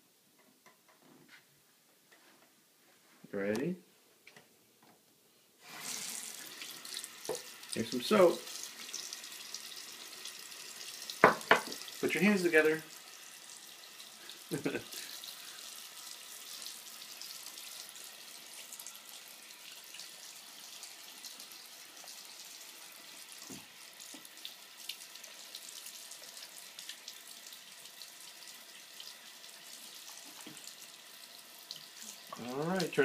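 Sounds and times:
faucet running into sink: 5.6s - 33.0s.

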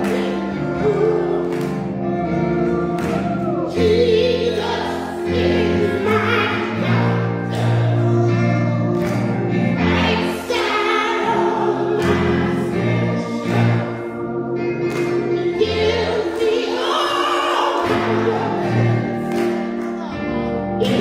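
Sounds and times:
choir singing gospel: 0.0s - 21.0s
keyboard bass chords: 0.0s - 21.0s.

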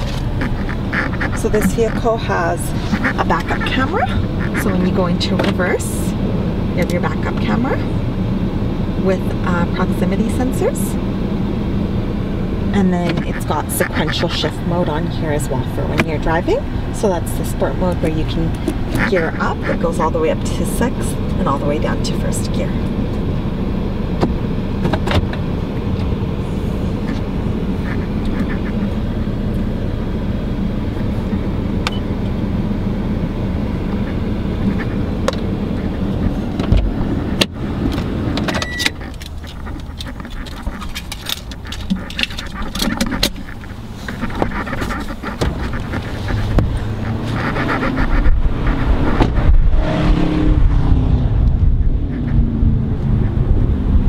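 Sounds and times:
car cabin hum idling: 0.0s - 49.7s
wind rumbling on microphone: 32.9s - 54.0s.

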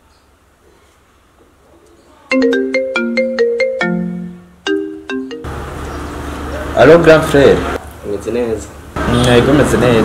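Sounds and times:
mobile phone ringtone melody: 2.3s - 5.5s.

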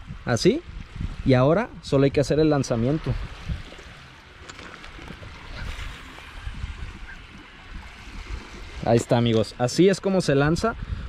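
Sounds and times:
wind rumbling on microphone: 0.0s - 11.0s
waves lapping on stony shore: 2.7s - 10.0s.

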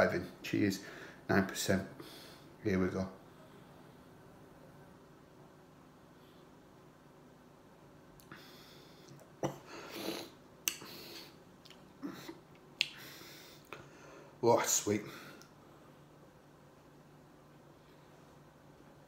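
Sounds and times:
lip smacks and mouth clicks: 9.0s - 9.4s, 10.6s - 11.0s, 11.6s - 13.0s
short breaths: 12.9s - 14.4s.

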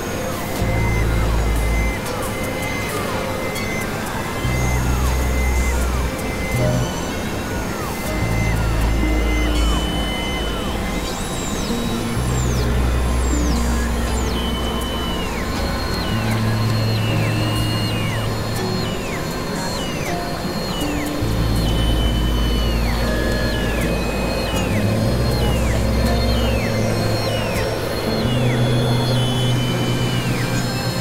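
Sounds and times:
noisy hiss: 0.0s - 31.0s
synthesizer drone music: 0.0s - 31.0s.

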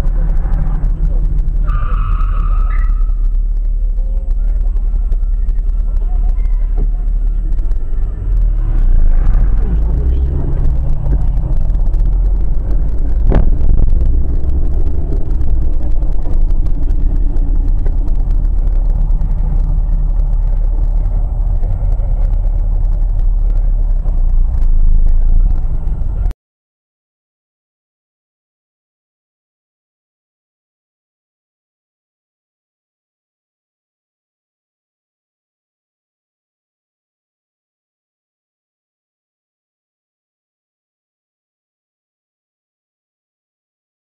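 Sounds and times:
car engine and road rumble: 0.0s - 26.3s.

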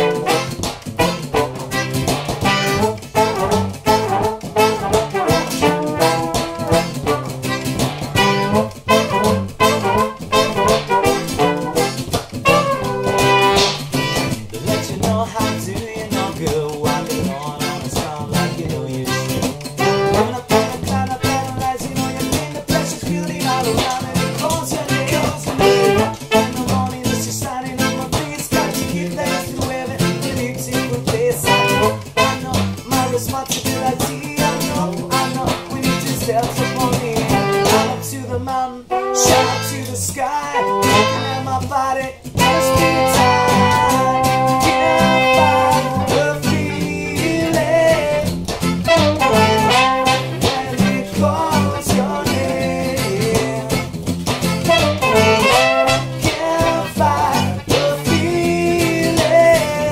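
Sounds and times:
person singing: 0.0s - 7.6s, 8.2s - 54.0s, 54.6s - 59.9s
trombone and trumpet: 0.0s - 23.0s, 23.6s - 41.6s, 42.3s - 53.9s, 54.5s - 59.9s
strummed acoustic guitar: 0.0s - 59.9s.

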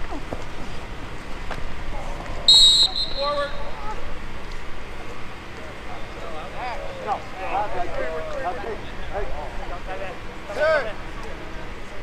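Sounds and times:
referee's whistle blast: 2.5s - 3.8s.

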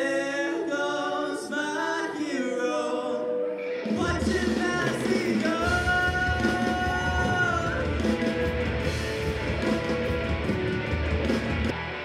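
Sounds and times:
voices singing a cappella: 0.0s - 8.2s.

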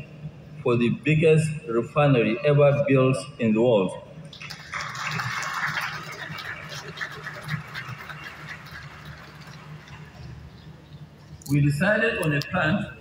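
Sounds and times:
audience applauding: 4.3s - 10.3s.

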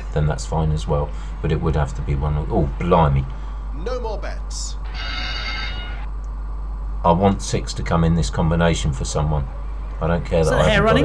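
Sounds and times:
steady low hum: 0.0s - 11.0s
bright ringing signal: 4.8s - 6.1s.

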